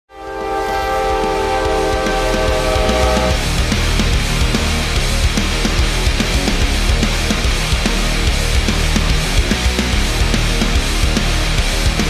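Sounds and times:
locomotive air horn: 0:00.1 - 0:03.4
train rumble with knocks: 0:01.0 - 0:03.8.

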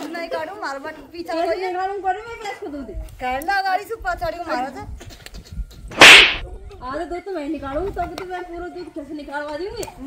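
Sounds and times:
whip-like crack: 0:05.9 - 0:06.4.

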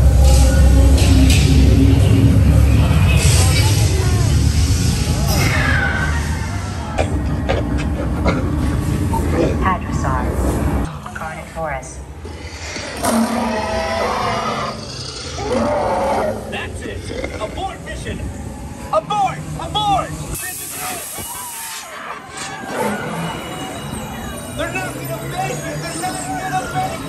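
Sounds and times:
ride vehicle rumbling and jolting: 0:00.0 - 0:11.2
dinosaur roars and shrieks: 0:05.2 - 0:07.0, 0:12.2 - 0:17.6, 0:21.2 - 0:24.1.

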